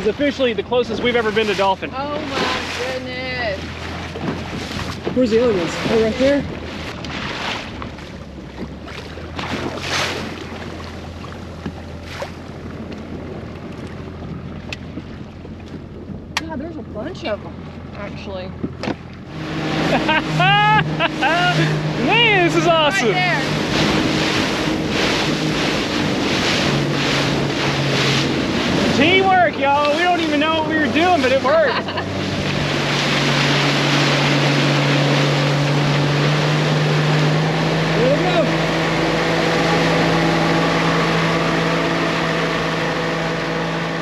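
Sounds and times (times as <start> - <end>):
boat wake rushing: 0.0 - 44.0
outboard motor running: 0.0 - 44.0
water slapping: 0.0 - 44.0
wind on microphone: 18.3 - 44.0
excited voices calling out: 20.3 - 23.5.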